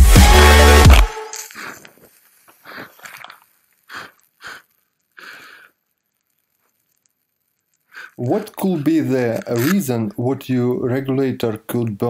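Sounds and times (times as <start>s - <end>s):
faint crackles: 0.8s - 12.0s
short hisses: 1.2s - 5.8s, 7.8s - 8.3s.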